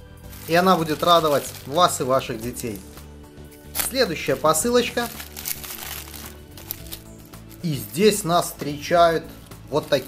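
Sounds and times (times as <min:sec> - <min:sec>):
background music: 0:00.0 - 0:10.0
plastic mailer crinkling: 0:00.3 - 0:03.0, 0:03.8 - 0:08.0.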